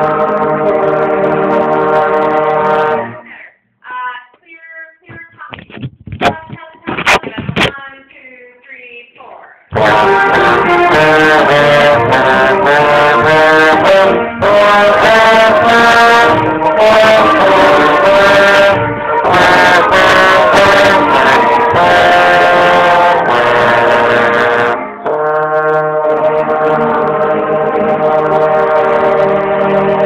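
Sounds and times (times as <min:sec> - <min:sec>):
trombone playing: 0:00.0 - 0:03.3, 0:09.7 - 0:30.0.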